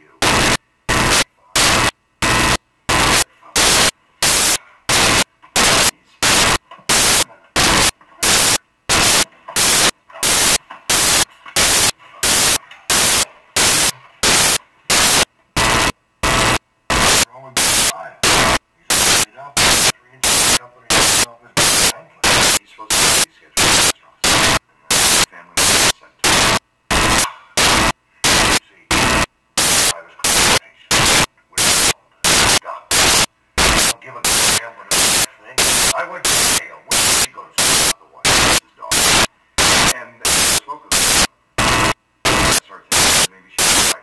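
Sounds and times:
bursts of static hiss: 0.0s - 44.0s.

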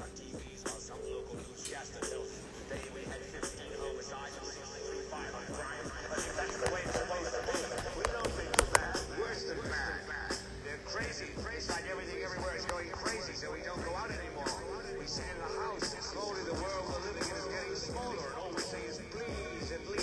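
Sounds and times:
hip hop beat: 0.0s - 20.0s
sharp clicks: 6.2s - 9.1s.

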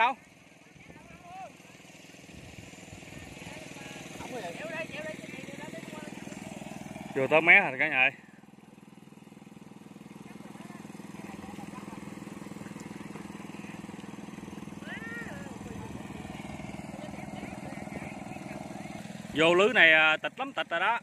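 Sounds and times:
small engine humming: 0.0s - 21.0s.

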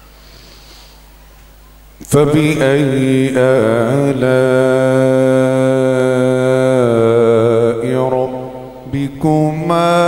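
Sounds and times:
man reciting melodically: 2.0s - 10.0s.

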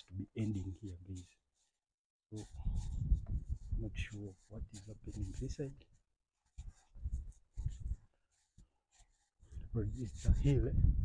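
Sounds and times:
rubbing noise on microphone: 0.0s - 11.0s.

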